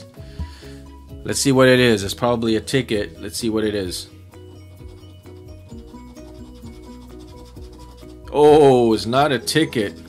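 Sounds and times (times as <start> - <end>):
background music: 0.0 - 10.0
coin scratching ticket: 4.6 - 10.0.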